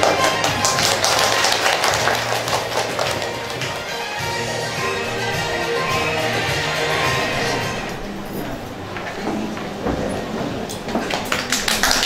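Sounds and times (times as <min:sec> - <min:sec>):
audience applause: 0:00.0 - 0:04.1, 0:11.0 - 0:12.0
background music: 0:00.0 - 0:08.7.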